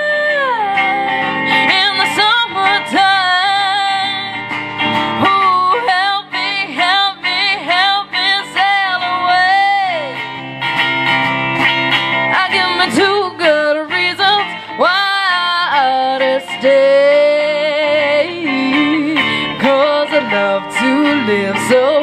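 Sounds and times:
woman singing into microphone: 0:00.0 - 0:10.7, 0:11.6 - 0:22.0
guitar accompaniment: 0:00.0 - 0:22.0.

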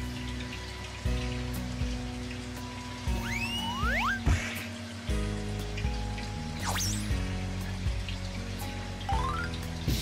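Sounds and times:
background music: 0:00.0 - 0:10.0
water bubbling and splashing: 0:00.0 - 0:10.0.

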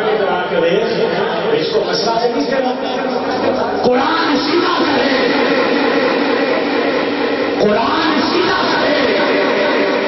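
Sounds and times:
man singing long note over loudspeaker: 0:02.1 - 0:10.0.

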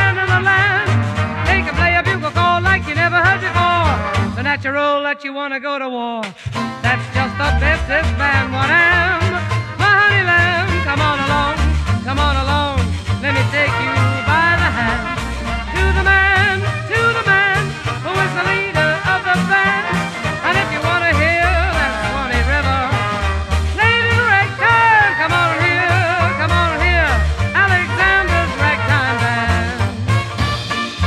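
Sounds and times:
jazz band playing: 0:00.0 - 0:04.5, 0:06.4 - 0:31.0.

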